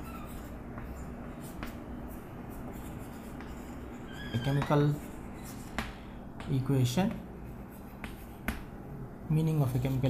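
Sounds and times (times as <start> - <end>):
chalk tapping on chalkboard: 0.1 - 8.8.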